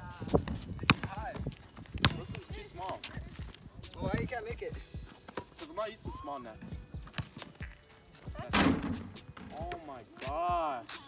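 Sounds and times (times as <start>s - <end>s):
basketball bouncing on concrete: 0.4s - 4.3s, 6.7s - 7.8s.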